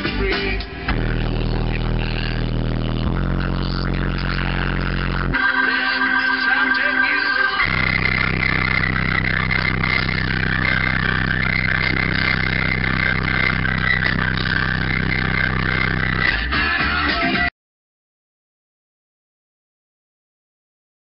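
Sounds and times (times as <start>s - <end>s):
bass-heavy music through subwoofer: 0.0s - 5.4s, 6.4s - 17.5s.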